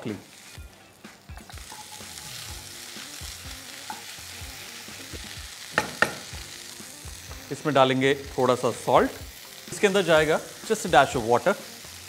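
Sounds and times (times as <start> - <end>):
vegetables sizzling in a pan: 0.0 - 12.0.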